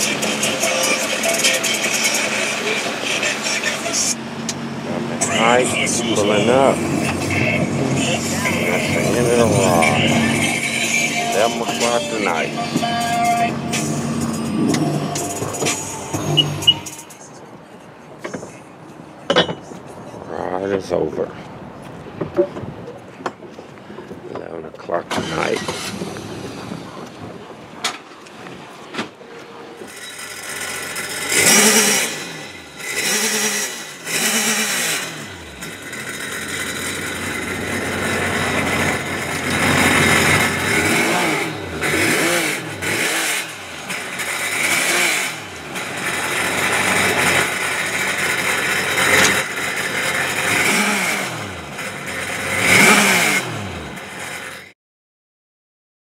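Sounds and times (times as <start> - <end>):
engine revving: 0.0 - 16.9, 29.9 - 54.7.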